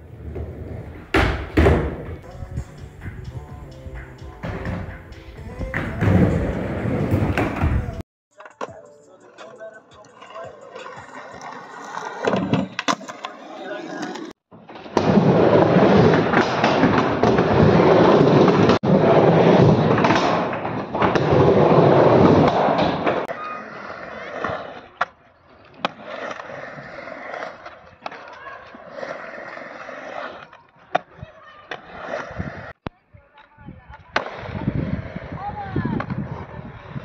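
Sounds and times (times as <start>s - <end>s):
skateboard wheels rolling: 0.0s - 37.0s.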